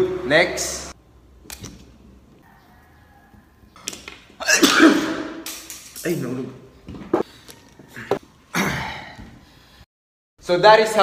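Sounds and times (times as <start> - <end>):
person sneezing: 4.4 - 5.4.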